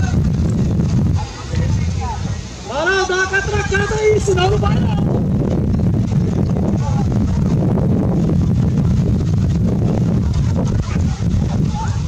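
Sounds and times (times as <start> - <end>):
faint voices: 0.0 - 5.3, 6.2 - 12.0
wind buffeting microphone: 0.0 - 12.0.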